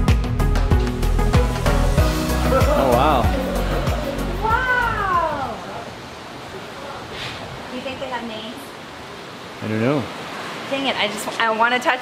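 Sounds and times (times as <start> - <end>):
background music: 0.0 - 5.4.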